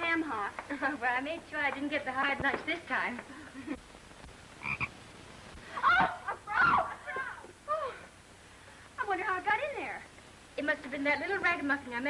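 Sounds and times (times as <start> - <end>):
frog croaking: 4.6 - 5.0.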